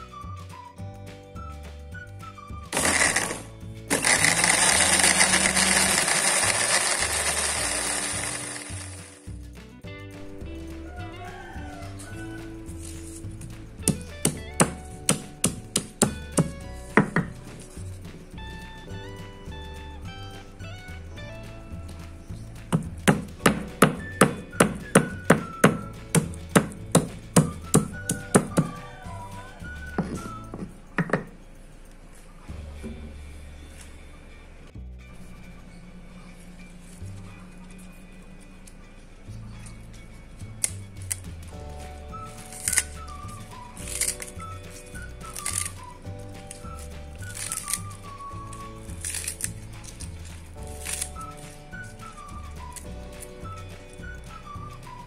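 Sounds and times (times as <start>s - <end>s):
background music: 0.0s - 55.0s
pestle knocking stone mortar: 13.8s - 17.6s, 22.6s - 28.8s.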